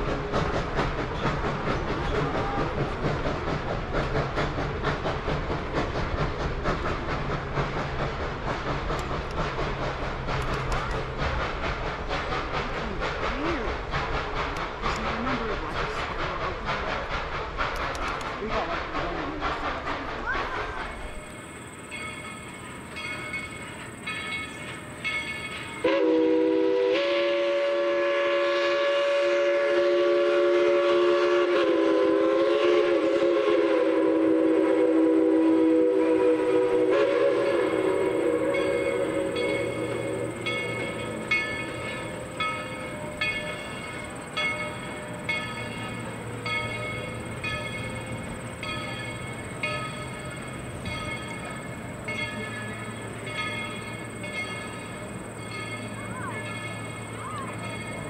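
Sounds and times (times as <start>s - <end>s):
locomotive bell ringing: 20.9s - 26.0s, 38.1s - 58.0s
steam locomotive chime whistle: 20.9s - 58.0s.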